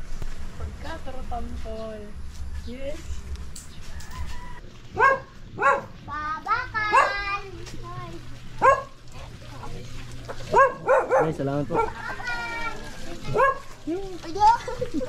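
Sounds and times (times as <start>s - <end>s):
dog yelping: 4.5s - 6.0s, 6.9s - 7.2s, 8.6s - 9.0s, 10.4s - 12.2s, 13.3s - 13.8s
dog barking: 5.0s - 6.0s, 6.8s - 7.3s, 8.6s - 9.0s, 10.4s - 12.0s, 13.3s - 13.8s.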